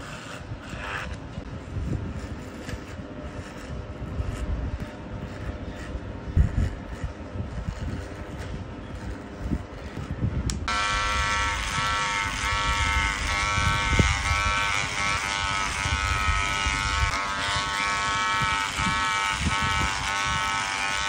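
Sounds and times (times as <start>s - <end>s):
hair clippers buzzing: 0.0s - 1.2s, 2.2s - 21.0s.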